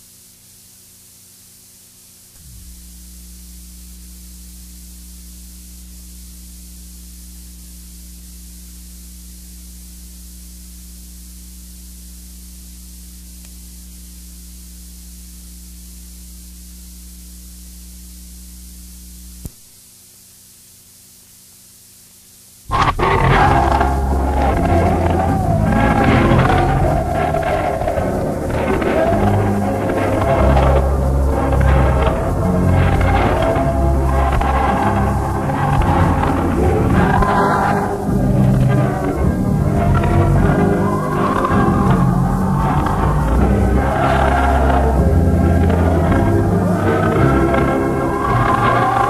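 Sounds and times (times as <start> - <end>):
low electrical hum: 0.0 - 49.0
loud music: 22.7 - 49.0.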